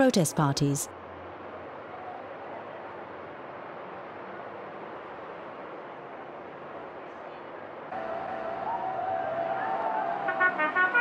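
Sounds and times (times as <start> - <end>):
brass held note: 10.2 - 11.0.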